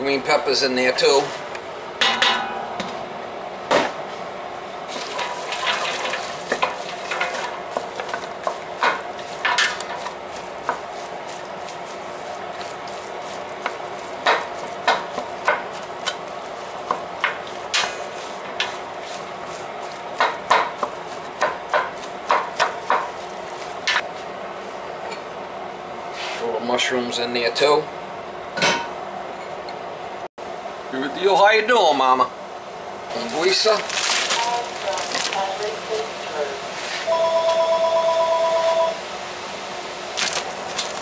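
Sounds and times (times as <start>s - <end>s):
meat sizzling in a pot: 4.9s - 23.8s.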